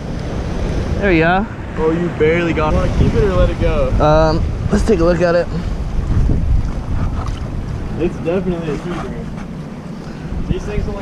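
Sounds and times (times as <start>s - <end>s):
surf against rocks: 0.0s - 11.0s
wind buffeting microphone: 0.0s - 11.0s.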